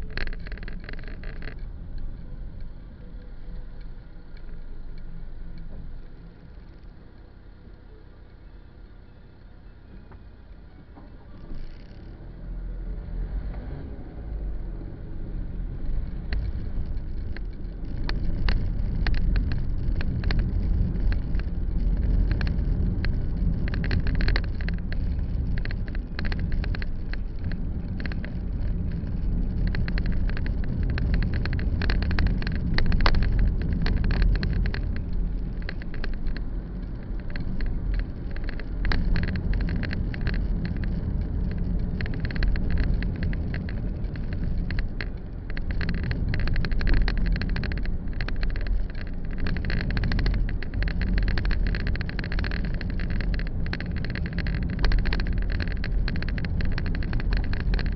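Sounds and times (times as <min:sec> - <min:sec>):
small rattling clicks: 0:00.0 - 0:07.2, 0:11.3 - 0:12.2, 0:15.8 - 0:57.9
car engine and road rumble: 0:00.0 - 0:57.9.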